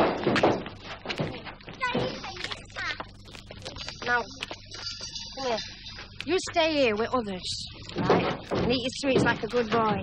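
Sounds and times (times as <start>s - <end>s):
thumps: 0.0s - 10.0s
voices in rough play: 1.1s - 10.0s.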